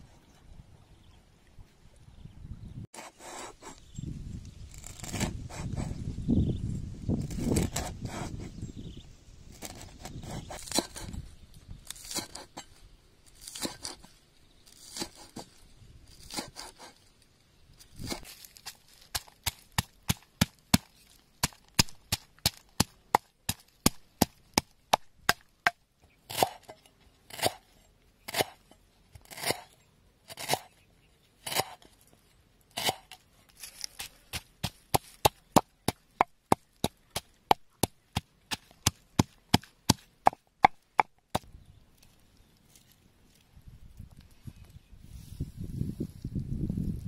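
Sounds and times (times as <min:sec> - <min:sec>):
cleaver chopping on wooden board: 0:19.2 - 0:26.7, 0:34.3 - 0:41.4
pestle pounding in stone mortar: 0:34.3 - 0:41.4.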